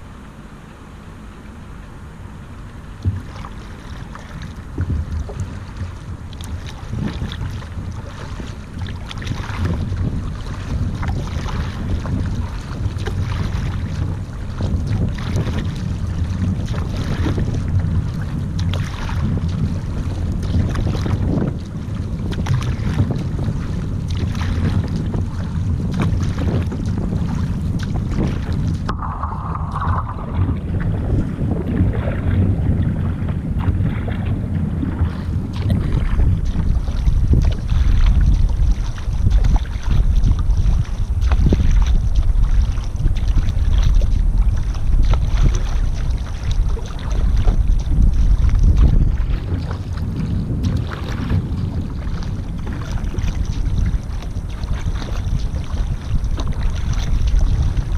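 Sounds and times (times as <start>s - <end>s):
water rushing along hull: 0.0s - 57.9s
paddle strokes splashing in water: 2.6s - 57.9s
wind buffeting microphone: 3.0s - 57.9s.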